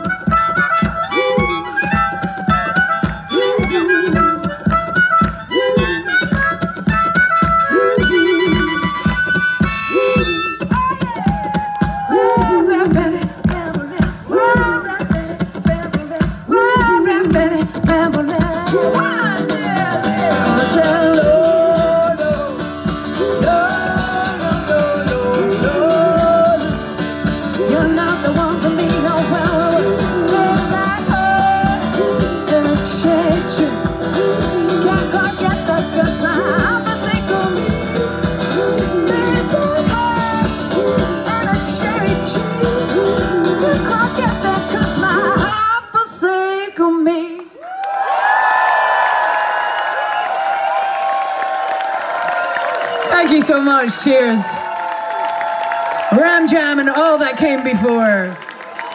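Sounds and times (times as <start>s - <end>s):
woman singing: 0.0s - 4.7s, 9.9s - 47.6s
strummed acoustic guitar: 12.4s - 45.7s.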